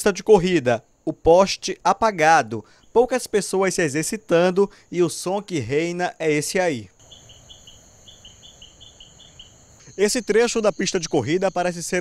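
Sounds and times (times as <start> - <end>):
crickets chirping: 0.0 - 12.0
high-pitched insect trill: 0.0 - 12.0.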